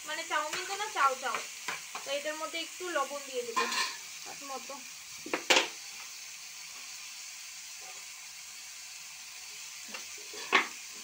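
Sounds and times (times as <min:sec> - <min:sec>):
vegetables sizzling in a frying pan: 0:00.0 - 0:11.0.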